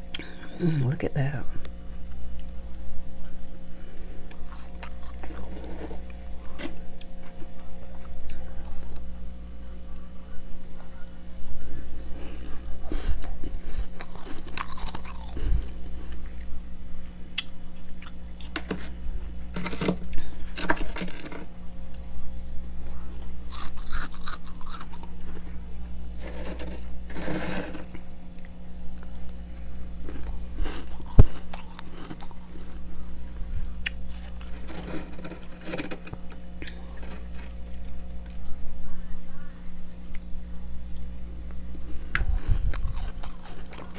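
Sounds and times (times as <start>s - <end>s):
steady low hum: 0.0s - 43.9s
frost crunching as chewed: 4.0s - 9.1s, 12.1s - 16.5s, 17.3s - 22.0s, 22.9s - 38.6s, 41.8s - 43.9s.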